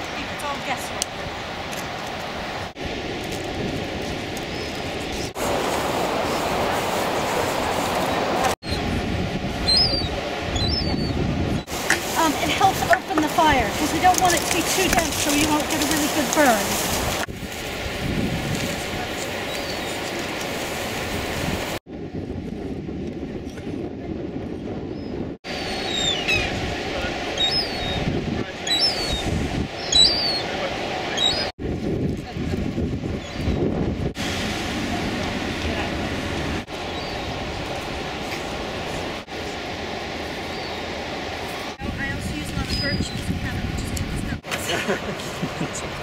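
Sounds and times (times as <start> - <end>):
wind on microphone: 0.0 - 46.0.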